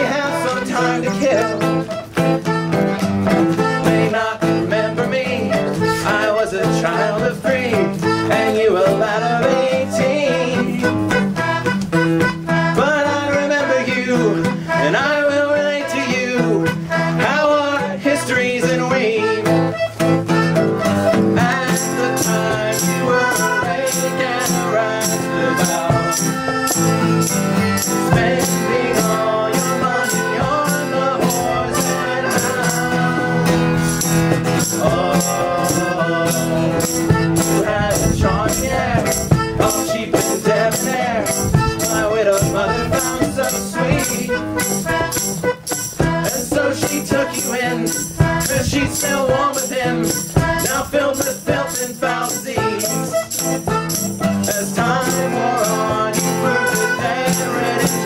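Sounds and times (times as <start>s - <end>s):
acoustic guitar: 0.0s - 58.0s
rattling percussion beat: 20.4s - 58.0s.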